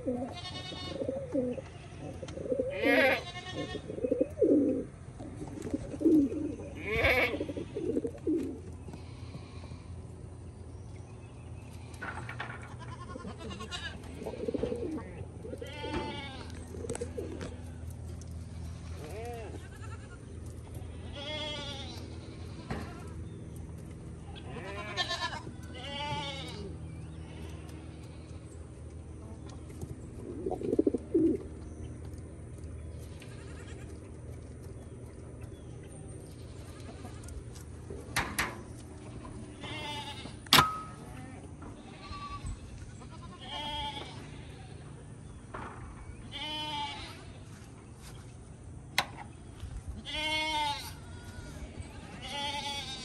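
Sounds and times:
goat bleating: 0.0s - 4.0s, 6.5s - 8.2s, 12.6s - 17.6s, 18.4s - 23.2s, 24.1s - 28.2s, 33.0s - 34.2s, 36.3s - 37.5s, 39.0s - 45.0s, 46.2s - 47.4s, 50.0s - 53.0s
pigeons cooing: 0.0s - 10.5s, 11.8s - 24.2s, 25.5s - 32.1s
steady low hum: 0.0s - 53.0s.

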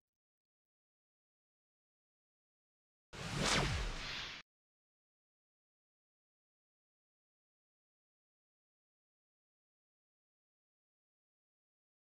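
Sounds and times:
whoosh sweeping down: 3.2s - 4.4s.

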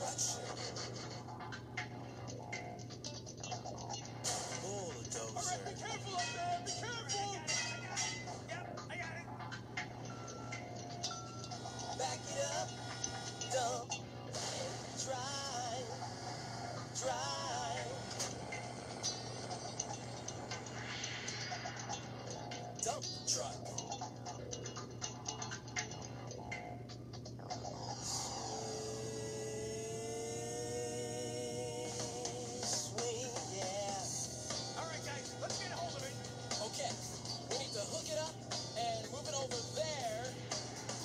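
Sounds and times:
children's song from small speaker: 4.6s - 8.7s, 11.5s - 18.7s, 28.0s - 41.0s.

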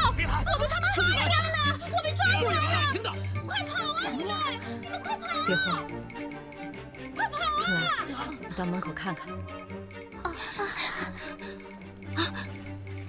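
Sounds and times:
background music: 0.0s - 13.0s
women speaking: 1.0s - 5.9s, 7.2s - 9.4s.

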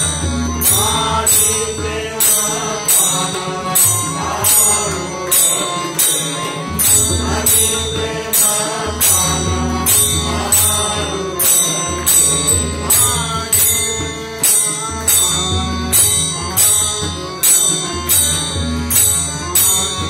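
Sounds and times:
man singing: 0.0s - 18.4s
harmonium: 0.0s - 20.0s
tabla: 0.0s - 20.0s.

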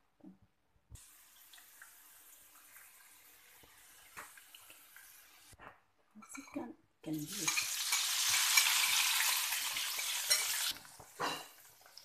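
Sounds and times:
faint steady hiss: 0.8s - 5.6s.

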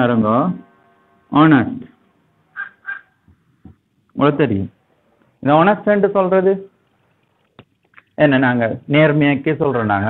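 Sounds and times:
marker squeaking on whiteboard: 2.5s - 3.2s.

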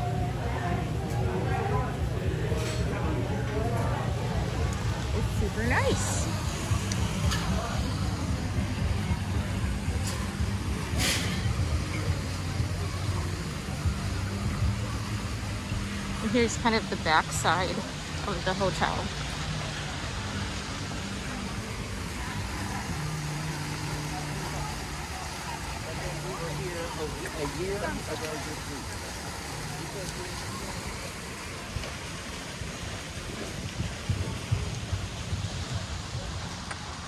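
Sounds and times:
low motor hum: 0.0s - 37.0s
rushing background noise: 0.0s - 37.0s.

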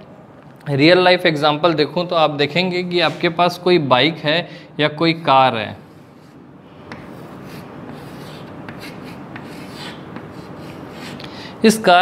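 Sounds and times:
chalk scratching on blackboard: 5.8s - 11.3s.

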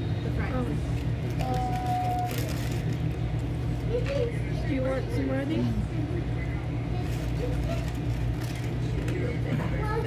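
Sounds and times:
machinery humming: 0.0s - 10.0s
faint voices: 0.1s - 10.0s.

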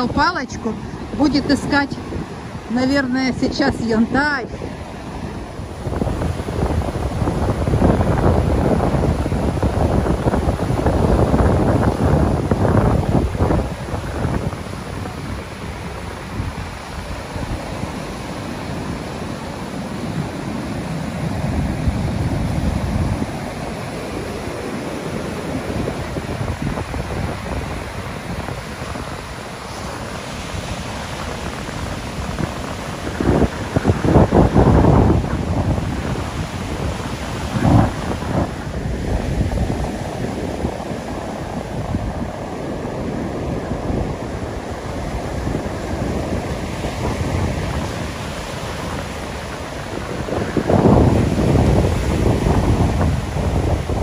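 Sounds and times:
surf breaking on sandy beach: 0.0s - 54.0s
wind buffeting microphone: 0.0s - 54.0s.

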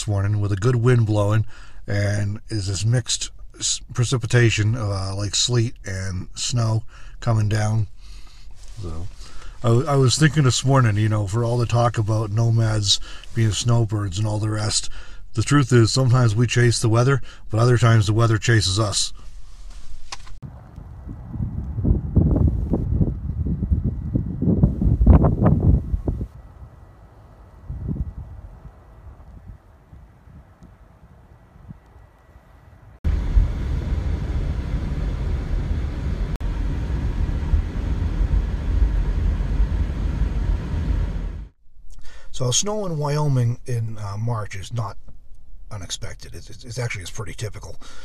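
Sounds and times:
wind buffeting microphone: 20.4s - 41.2s.

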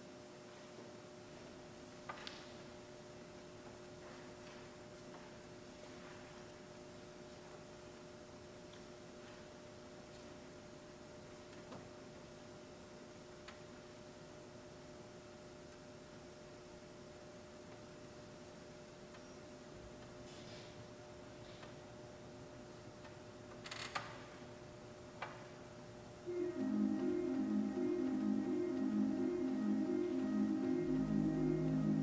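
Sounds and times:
faint steady hum: 0.0s - 32.0s.

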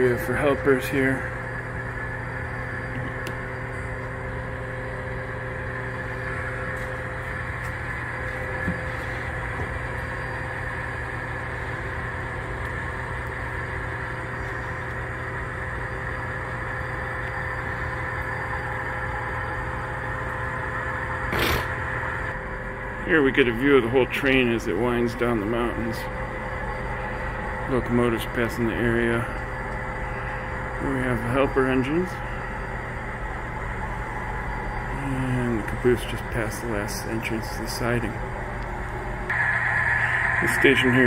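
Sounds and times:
diesel locomotive engine drone: 0.0s - 41.0s.

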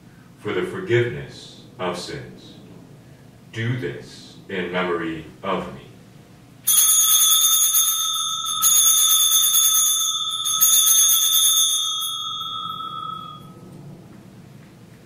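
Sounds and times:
altar bell ringing: 6.6s - 14.0s.

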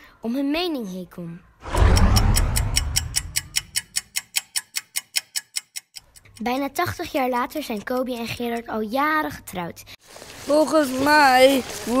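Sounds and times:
deep boom: 1.6s - 3.7s
fast clock ticking: 1.7s - 9.0s.

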